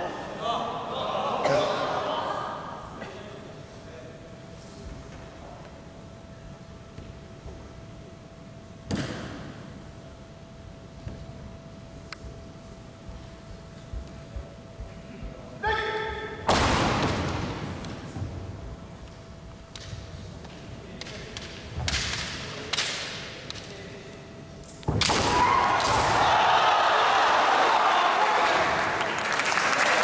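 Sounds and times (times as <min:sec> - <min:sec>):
bamboo swords cracking: 0:21.0 - 0:23.7.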